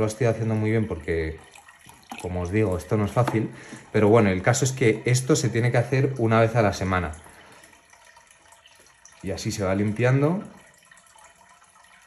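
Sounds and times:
water running through hose: 0:00.0 - 0:12.0.

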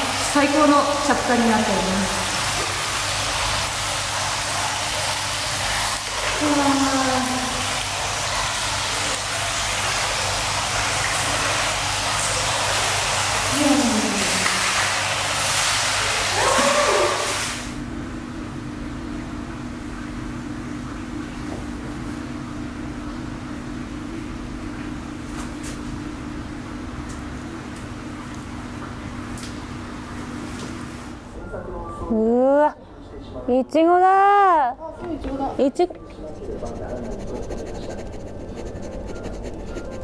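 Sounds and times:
water pouring into a bath: 0:01.2 - 0:17.8
steady hum: 0:34.7 - 0:40.0.

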